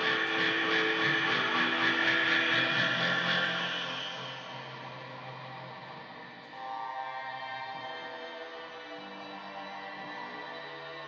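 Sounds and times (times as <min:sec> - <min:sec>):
distorted electric guitar noise: 0:00.0 - 0:05.0
steady low drone: 0:00.0 - 0:07.2.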